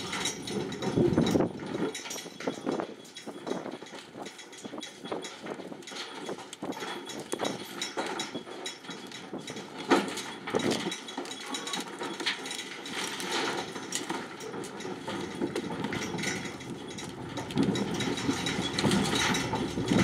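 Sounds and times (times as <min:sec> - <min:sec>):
hooves clattering on metal floor: 0:00.0 - 0:20.0.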